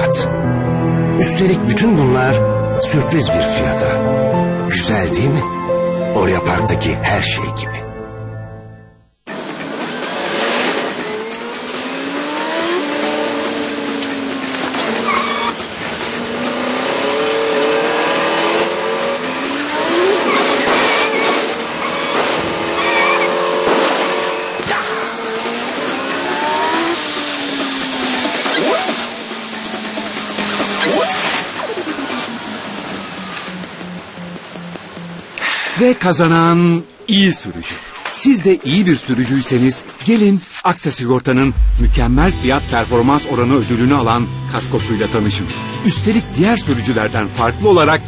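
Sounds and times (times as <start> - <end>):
game car engines revving: 9.3 - 35.6
tyre squeals and skids: 14.6 - 15.7, 19.5 - 27.5, 28.1 - 29.7
game music: 41.5 - 43.1.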